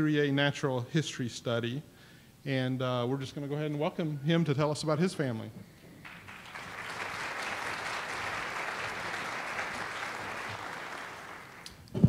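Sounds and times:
audience applauding: 0:06.0 - 0:11.8.

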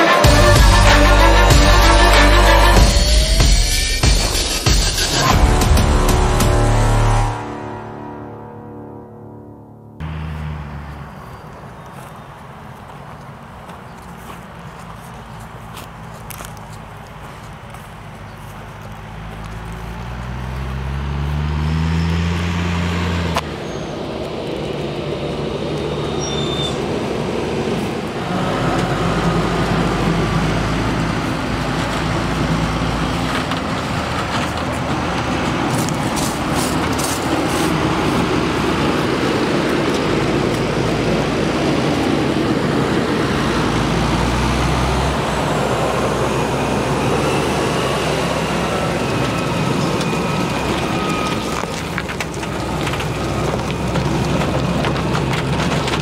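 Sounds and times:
tractor diesel engine under load: 0:00.0 - 0:09.0, 0:10.0 - 0:56.0
tyre and driveline noise: 0:10.0 - 0:56.0.

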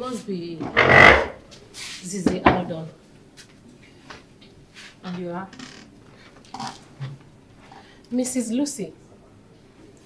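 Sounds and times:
noisy burst: 0:00.7 - 0:01.4.

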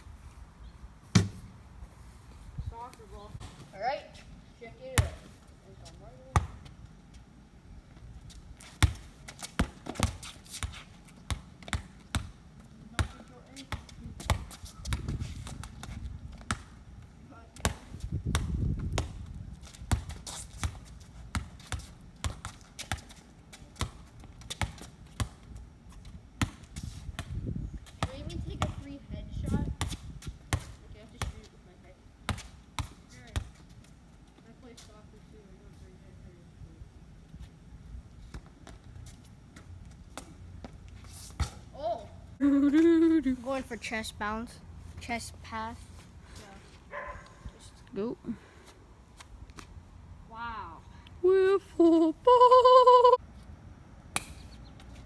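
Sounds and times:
ball bouncing on concrete: 0:01.1 - 0:01.5, 0:04.8 - 0:06.8, 0:08.6 - 0:16.8, 0:17.5 - 0:25.6, 0:26.3 - 0:31.6, 0:32.2 - 0:33.7, 0:38.3 - 0:38.9, 0:39.6 - 0:42.0, 0:54.1 - 0:55.0.

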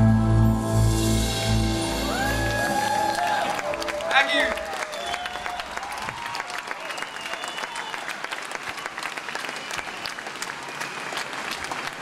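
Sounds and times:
crowd whistling and whooping: 0:01.8 - 0:12.0
crowd clapping: 0:02.1 - 0:12.0.

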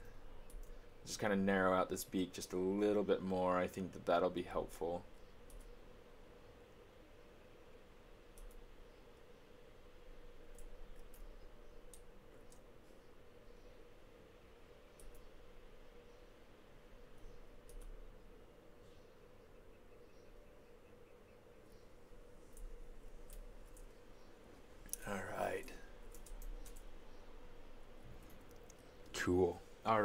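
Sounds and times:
faint computer clicks: 0:00.0 - 0:00.8, 0:05.1 - 0:05.8, 0:08.3 - 0:09.0, 0:10.4 - 0:13.1, 0:14.9 - 0:15.4, 0:17.1 - 0:18.0, 0:22.5 - 0:27.2, 0:28.1 - 0:29.2
steady low hum: 0:00.0 - 0:30.0.

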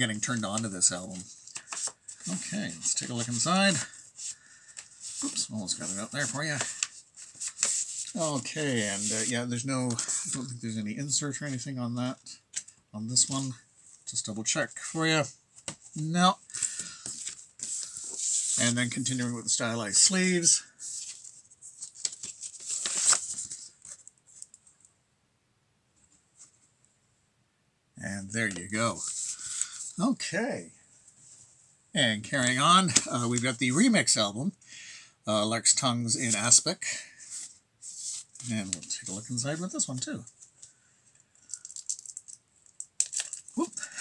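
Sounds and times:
paper and card rustling: 0:00.1 - 0:11.7, 0:15.6 - 0:24.7, 0:28.4 - 0:30.1, 0:36.1 - 0:44.0.

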